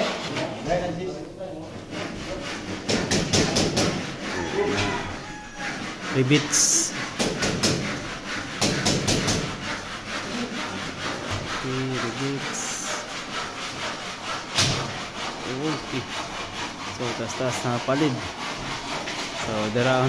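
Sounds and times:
hand tool scraping plastic panel: 0:01.6 - 0:20.0.

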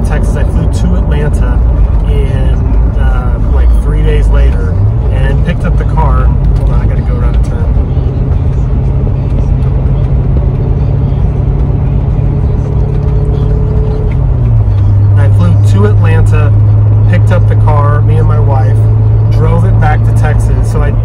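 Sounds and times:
car engine drone inside cabin: 0:00.0 - 0:21.0.

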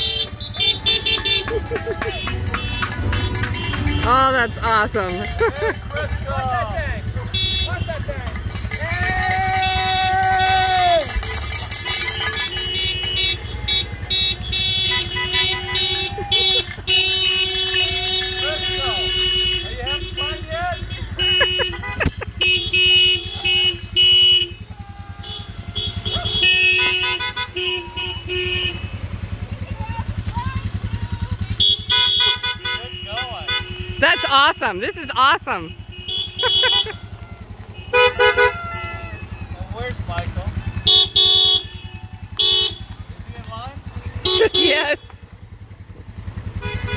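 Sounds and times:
car horns honking: 0:00.0 - 0:46.9
cars driving slowly: 0:00.0 - 0:46.9
people shouting and cheering: 0:00.2 - 0:14.4, 0:15.2 - 0:16.9, 0:29.5 - 0:31.6.

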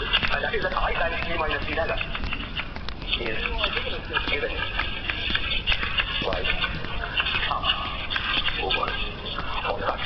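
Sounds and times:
indistinct voices: 0:00.0 - 0:10.0
steady background noise: 0:00.0 - 0:10.0.

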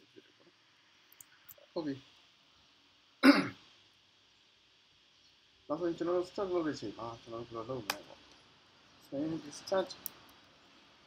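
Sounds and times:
person clearing throat: 0:03.2 - 0:03.6.

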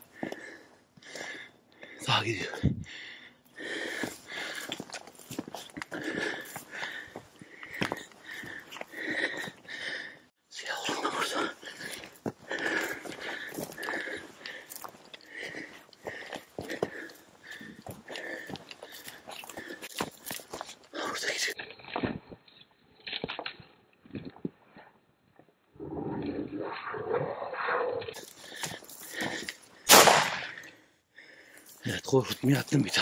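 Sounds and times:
person breathing: 0:00.0 - 0:21.6, 0:28.1 - 0:31.8
footsteps crunching through dry grass: 0:03.8 - 0:09.0, 0:10.9 - 0:21.0.

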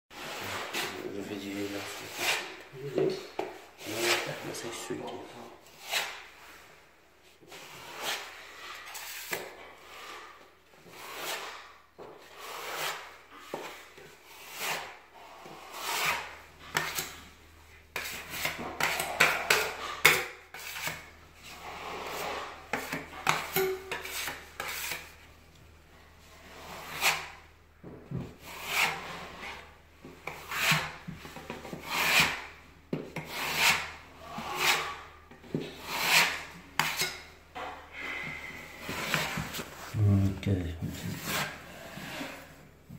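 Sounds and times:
putty knife scraping wall: 0:00.2 - 0:04.7, 0:05.6 - 0:06.6, 0:07.5 - 0:25.3, 0:26.4 - 0:27.5, 0:28.1 - 0:39.9, 0:40.8 - 0:42.6.

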